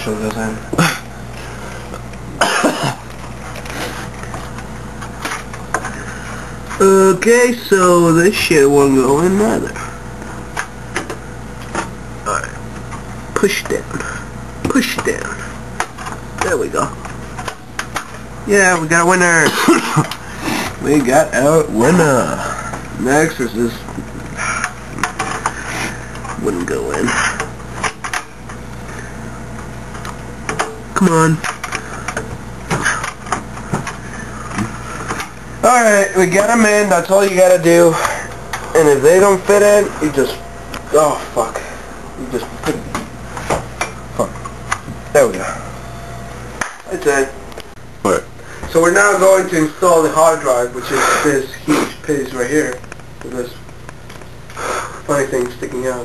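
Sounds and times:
steady low hum: 0:00.0 - 0:56.0
man coughing: 0:02.3 - 0:03.1.

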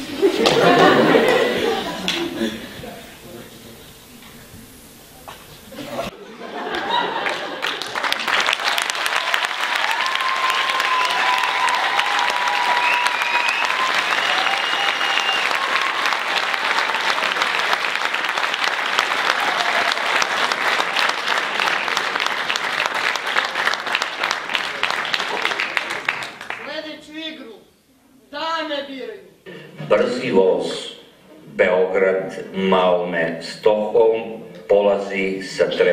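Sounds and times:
audience applauding: 0:00.0 - 0:02.5, 0:06.3 - 0:26.8
crowd calls: 0:06.5 - 0:23.8.

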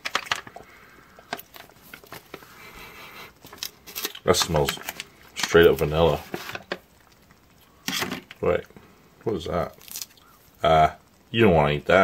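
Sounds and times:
foil food pouch crackling: 0:00.0 - 0:02.8, 0:03.4 - 0:07.4, 0:09.6 - 0:10.4.

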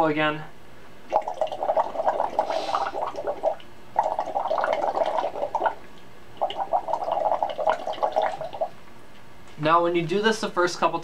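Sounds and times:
water bubbling through straws: 0:01.1 - 0:08.8.

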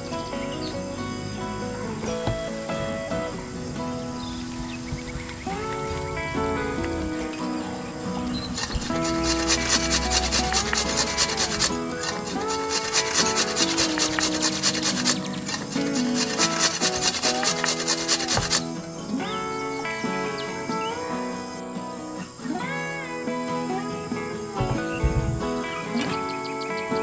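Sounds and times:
background music: 0:00.0 - 0:27.0
cheese grating rasps: 0:08.6 - 0:18.6.

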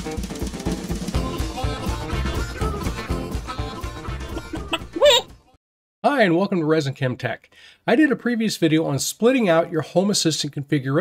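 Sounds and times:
intro music with a beat: 0:00.0 - 0:05.0
chicken call sound effect: 0:01.2 - 0:05.4.

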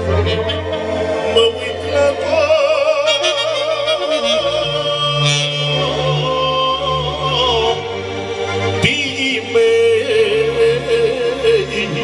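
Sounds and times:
man singing with vibrato: 0:00.0 - 0:08.2, 0:08.8 - 0:12.0
saxophone: 0:00.0 - 0:09.0.

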